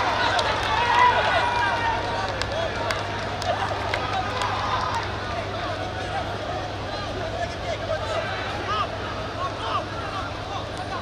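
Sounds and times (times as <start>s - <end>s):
sharp claps: 0.0s - 5.1s
crowd shouting and cheering: 0.0s - 11.0s
steady low hum: 0.0s - 11.0s.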